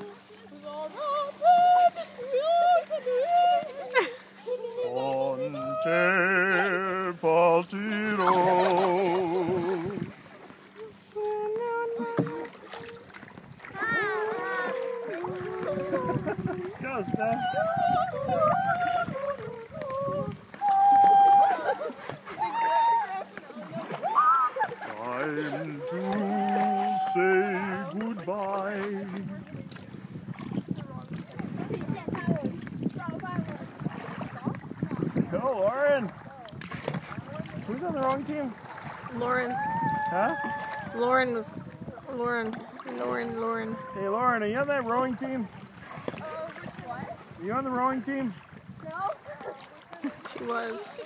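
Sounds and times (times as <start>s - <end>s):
canoe paddles dipping: 0.0s - 51.0s
water sloshing: 0.0s - 51.0s
person humming: 4.5s - 10.0s, 10.8s - 13.1s
wind buffeting microphone: 8.8s - 10.4s, 12.0s - 28.0s, 28.8s - 51.0s.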